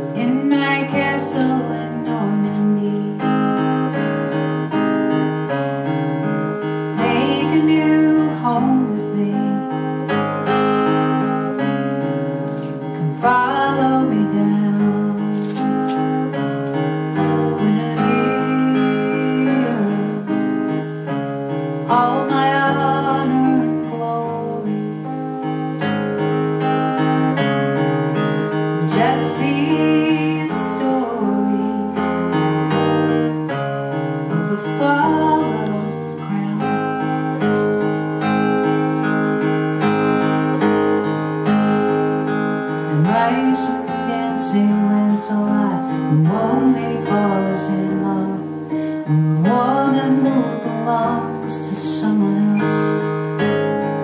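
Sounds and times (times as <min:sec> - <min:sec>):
acoustic guitar picking: 0:00.0 - 0:54.0
woman singing folk song: 0:00.0 - 0:54.0.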